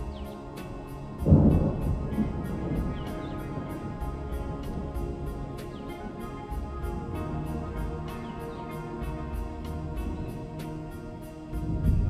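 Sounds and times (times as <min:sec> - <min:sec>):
calm instrumental meditation music: 0:00.0 - 0:12.0
thunder rumble: 0:00.0 - 0:12.0.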